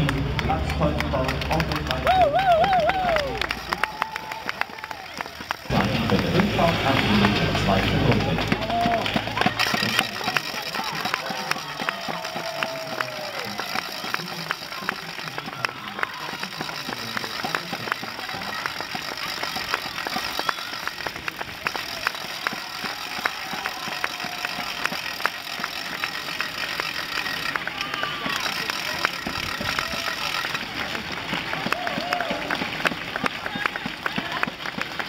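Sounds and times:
spectators clapping: 0.0 - 35.0
shouts of encouragement: 1.9 - 5.4, 8.4 - 17.0, 21.6 - 25.6, 27.4 - 30.6, 31.5 - 34.5.

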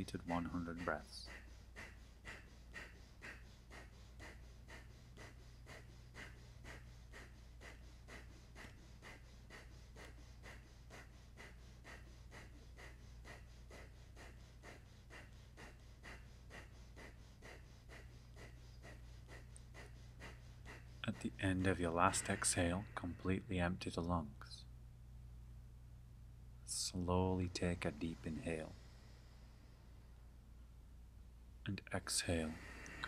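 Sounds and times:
forceful nasal exhalations: 0.0 - 23.3, 32.4 - 33.0.

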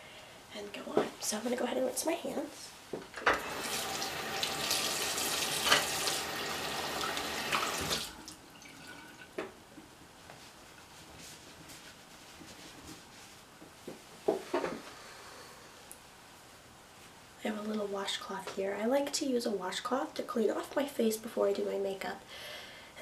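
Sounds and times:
tap water running: 3.2 - 9.5
faint knocks and rustles: 8.8 - 15.0.

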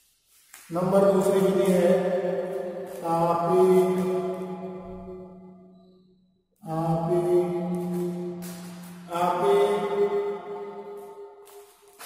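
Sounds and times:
person chanting held notes: 2.9 - 4.6, 6.6 - 11.0.

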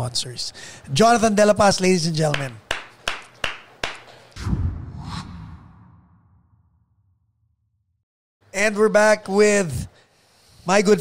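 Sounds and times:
hand claps: 2.2 - 4.2
low whoosh sound effect: 4.4 - 7.5.

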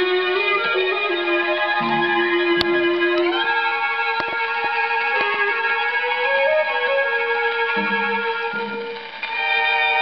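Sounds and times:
dance orchestra on gramophone: 0.0 - 10.0
faint record clicks: 8.8 - 9.4.

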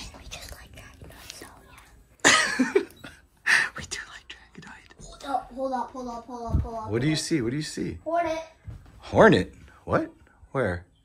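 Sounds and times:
child whispering: 0.0 - 2.1.

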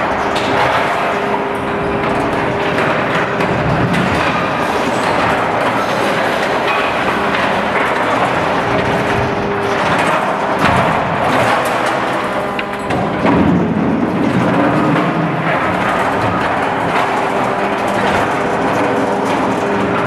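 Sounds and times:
machine engine and hydraulics running: 0.0 - 20.0.

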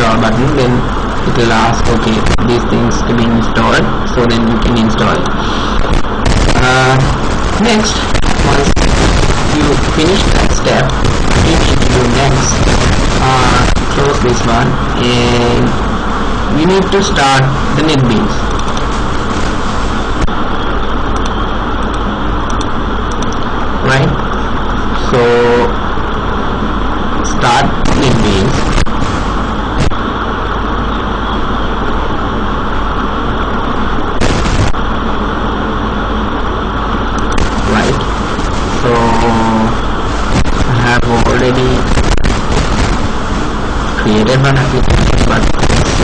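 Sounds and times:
loud steady background noise: 0.0 - 46.0
steady background hiss: 0.0 - 46.0
sharp click: 21.1 - 23.4.

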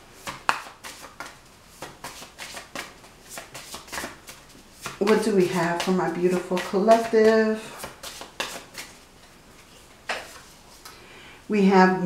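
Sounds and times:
cards being shuffled: 0.2 - 10.9.

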